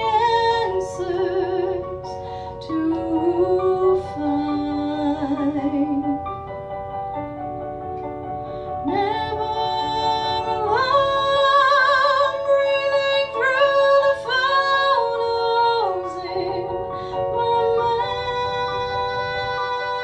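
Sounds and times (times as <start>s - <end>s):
woman singing with vibrato: 0.0s - 6.2s, 8.8s - 20.0s
sustained keyboard chords: 0.0s - 20.0s.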